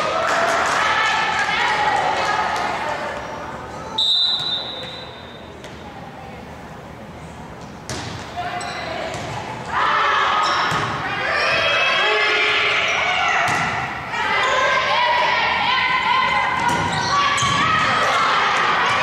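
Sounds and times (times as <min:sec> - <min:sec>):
volleyball hits: 0:07.8 - 0:08.4, 0:10.5 - 0:11.7, 0:13.4 - 0:14.0, 0:16.4 - 0:19.0
players shouting: 0:09.6 - 0:19.0.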